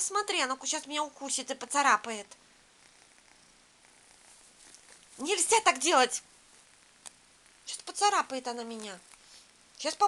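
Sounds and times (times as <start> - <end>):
kitten purring: 2.2 - 10.0.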